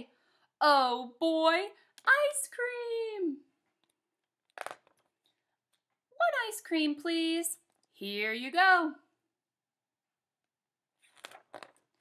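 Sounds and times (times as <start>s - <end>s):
book page turning: 11.0s - 12.0s.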